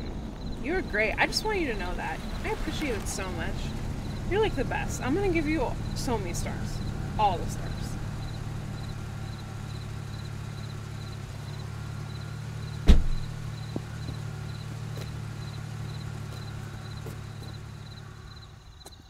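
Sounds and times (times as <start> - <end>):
car idling: 0.0 - 18.9
car door shutting thud: 12.8 - 14.0.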